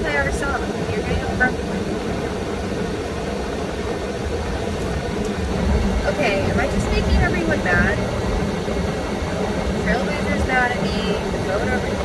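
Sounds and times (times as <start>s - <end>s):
idling car cabin hum: 0.0s - 12.0s.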